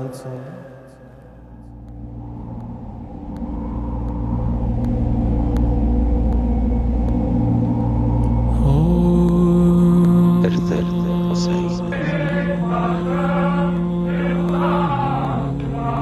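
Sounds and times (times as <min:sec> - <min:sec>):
low sustained drone: 0:00.0 - 0:16.0
deep cinematic rumble: 0:01.0 - 0:16.0.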